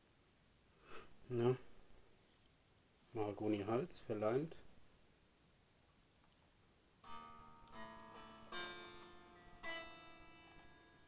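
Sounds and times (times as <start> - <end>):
unplugged electric guitar strums: 7.0 - 11.0.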